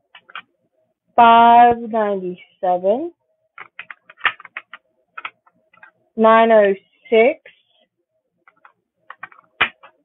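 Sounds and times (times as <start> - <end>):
plastic containers clicking: 3.6 - 5.9, 8.5 - 10.0.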